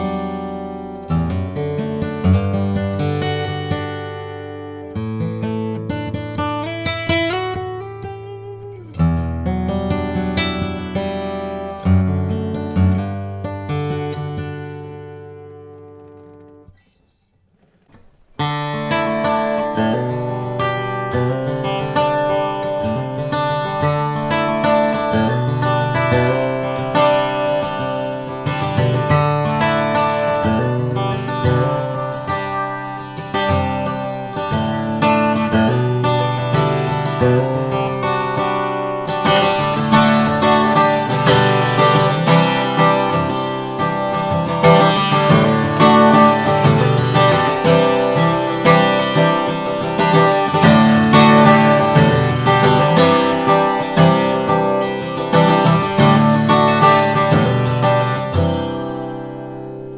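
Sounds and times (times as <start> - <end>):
acoustic guitar strummed with pick: 0.0 - 59.9.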